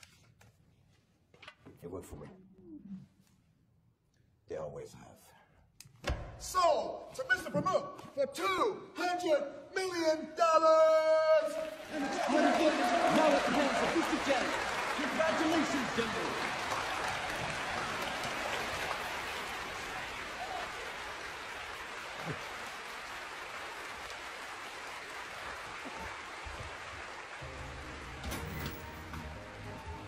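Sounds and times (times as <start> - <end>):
voices cheering: 10.8 - 30.0
audience applauding: 11.4 - 30.0
low music: 27.4 - 30.0.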